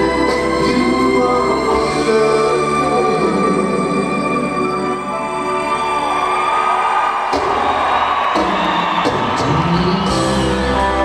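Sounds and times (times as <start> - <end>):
live rock band playing: 0.0 - 5.0, 7.2 - 11.0
crowd cheering: 4.8 - 11.0.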